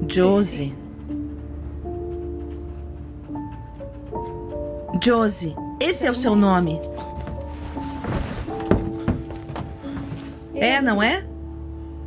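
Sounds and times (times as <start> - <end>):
sustained horror score tones: 0.0 - 6.6
dull thunks: 6.9 - 10.6.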